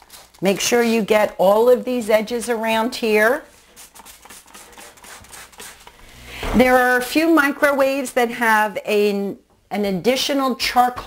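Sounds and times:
cloth rag rubbing plastic: 2.9 - 6.3.

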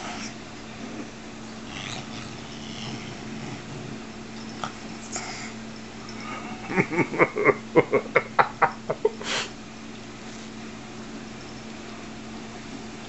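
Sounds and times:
cat snorting while eating: 0.0 - 5.6.

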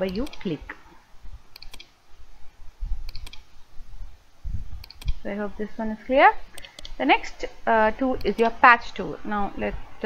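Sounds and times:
computer mouse clicks: 0.0 - 0.5, 1.5 - 1.9, 3.0 - 3.5, 4.8 - 5.2, 6.6 - 7.0, 8.2 - 8.6
dull low thumps: 4.4 - 4.9.

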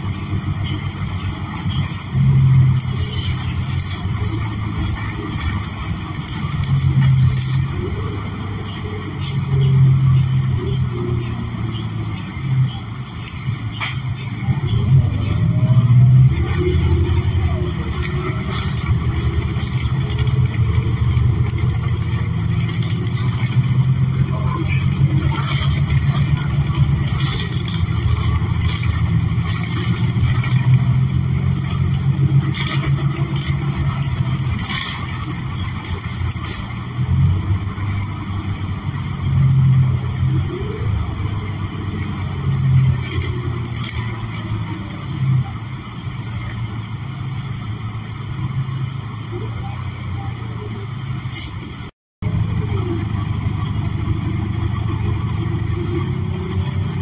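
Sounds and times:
bus engine and road drone: 0.0 - 57.0.

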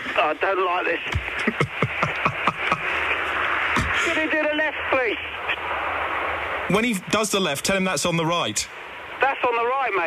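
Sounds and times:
people laughing: 1.3 - 3.0.

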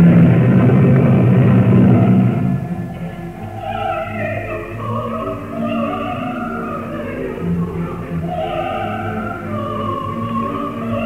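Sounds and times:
opera singing in old recording: 1.7 - 11.0.

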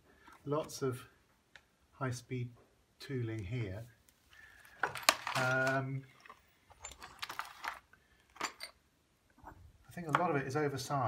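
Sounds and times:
metal tools clinking in plastic tub: 4.8 - 7.8, 8.4 - 8.8.

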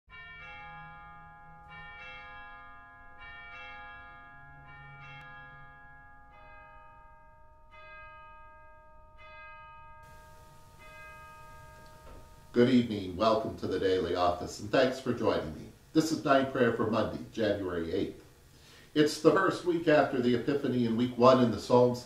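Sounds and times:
bells ringing: 0.1 - 18.1.

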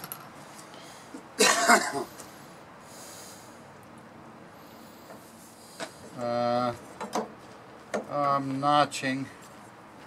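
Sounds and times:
person coughing: 1.4 - 2.1.

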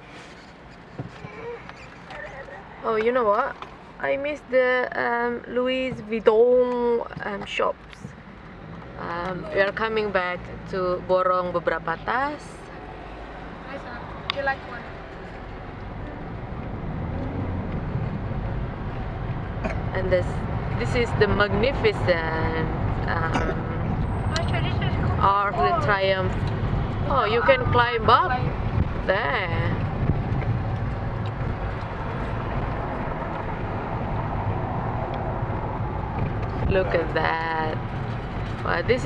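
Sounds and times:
car engine and road noise: 0.0 - 39.0.

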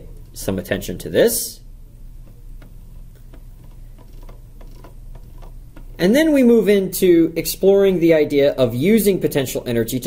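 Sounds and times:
mouse scroll wheel clicking: 2.2 - 6.0.

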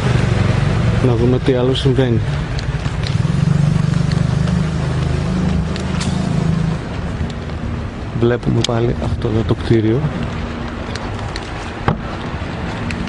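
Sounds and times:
street traffic: 0.0 - 13.0
vehicle engine humming: 0.0 - 13.0.

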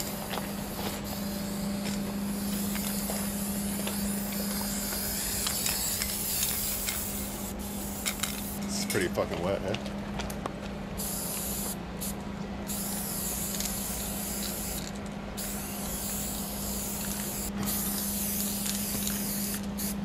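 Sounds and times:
spray paint can hissing: 0.0 - 8.6, 11.0 - 20.0.

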